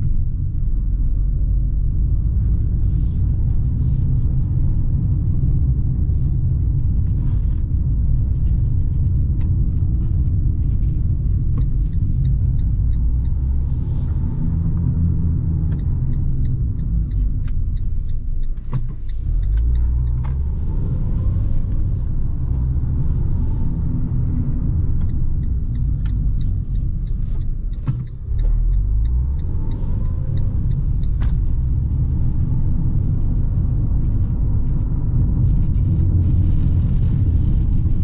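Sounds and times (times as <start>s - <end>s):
low rumble of tyres on cobblestones: 0.0s - 38.0s
light ticks: 6.1s - 38.0s.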